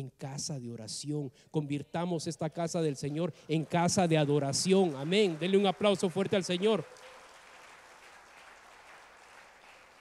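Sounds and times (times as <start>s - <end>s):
faint applause: 3.4s - 10.0s.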